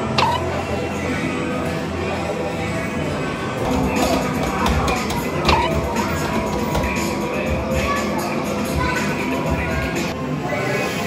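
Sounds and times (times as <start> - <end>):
arcade game machine music and jingles: 0.0 - 0.8, 3.7 - 7.2
people talking: 0.2 - 11.0.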